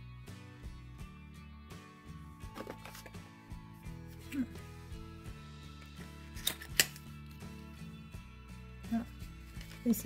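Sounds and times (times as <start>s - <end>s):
soft sustained background music: 0.0s - 10.0s.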